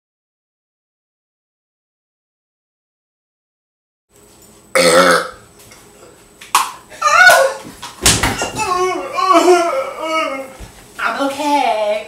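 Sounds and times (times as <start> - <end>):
man burping loudly: 4.7 - 5.5.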